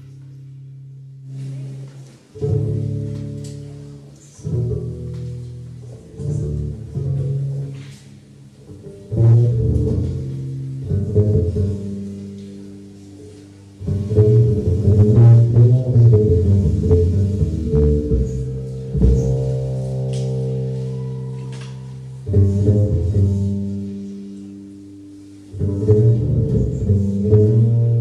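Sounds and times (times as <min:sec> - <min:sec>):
double bass notes: 0:00.0 - 0:28.0
low piano notes: 0:00.0 - 0:28.0
jazz band playing: 0:08.7 - 0:13.0, 0:13.7 - 0:28.0.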